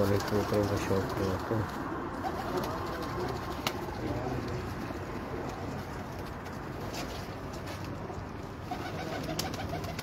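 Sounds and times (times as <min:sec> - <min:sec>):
pigeons cooing: 0:08.5 - 0:10.0.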